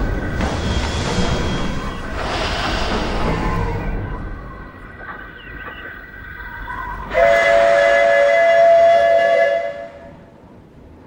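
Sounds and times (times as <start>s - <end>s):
steam locomotive whistle: 7.1s - 10.3s.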